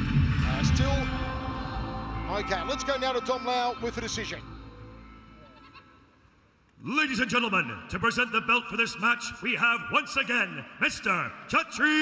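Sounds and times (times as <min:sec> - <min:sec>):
ring announcer calling out: 0:02.1 - 0:04.6.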